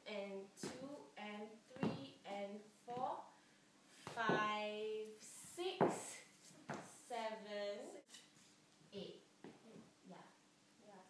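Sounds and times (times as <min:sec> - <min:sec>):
woman calling out rhythm: 0:00.0 - 0:03.2, 0:04.1 - 0:05.0.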